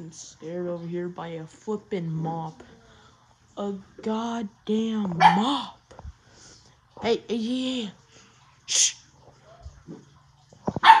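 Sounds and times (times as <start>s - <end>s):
puppy barking: 5.2s - 5.6s, 10.8s - 11.0s.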